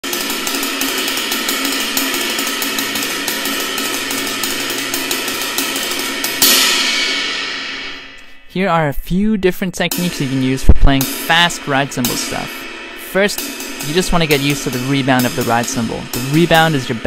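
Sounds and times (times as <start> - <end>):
ride cymbal played fast: 0.0 - 8.5, 9.9 - 17.0.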